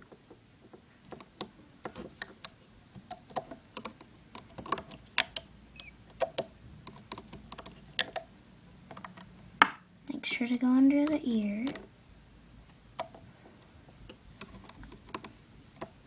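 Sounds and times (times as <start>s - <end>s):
small plastic clicks and taps: 0.0s - 5.5s, 6.1s - 8.3s, 11.0s - 11.9s, 14.0s - 16.0s.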